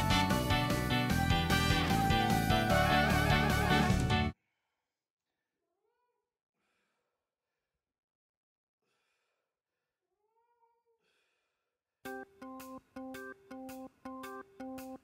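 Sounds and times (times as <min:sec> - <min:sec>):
background music: 0:00.0 - 0:04.4, 0:12.1 - 0:15.0
faint cat meows: 0:10.2 - 0:11.0.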